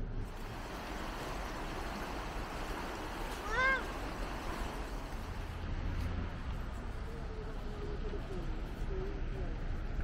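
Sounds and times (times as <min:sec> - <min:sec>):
river running over stones: 0:00.1 - 0:08.8.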